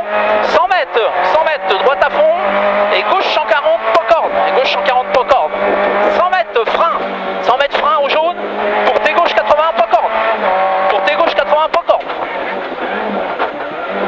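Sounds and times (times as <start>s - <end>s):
car engine accelerating hard: 0.0s - 14.0s.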